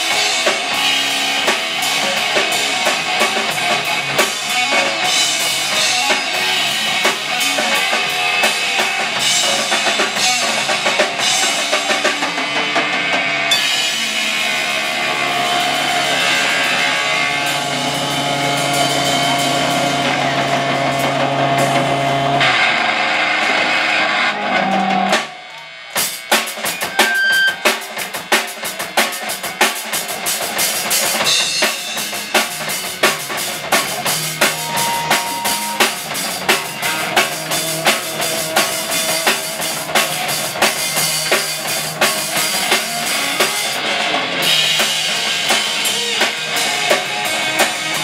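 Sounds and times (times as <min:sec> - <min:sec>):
bass guitar: 0:00.0 - 0:48.0
distorted electric guitar: 0:00.0 - 0:48.0
drum kit hits: 0:00.0 - 0:48.0.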